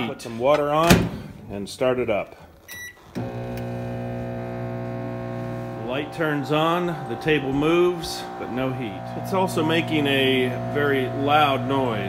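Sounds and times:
microwave oven humming: 3.2 - 12.0.

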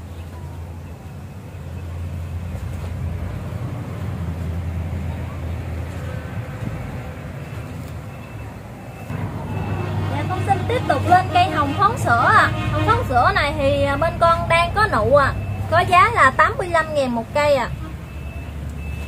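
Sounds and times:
vehicle engine rumble: 0.0 - 19.0.

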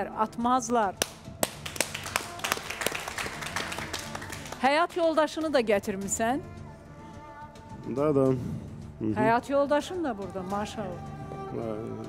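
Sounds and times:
sharp individual claps: 0.9 - 5.6
light audience applause: 1.0 - 5.6.

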